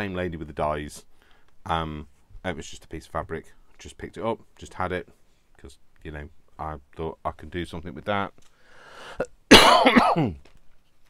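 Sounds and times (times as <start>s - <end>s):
man coughing: 9.5s - 10.4s.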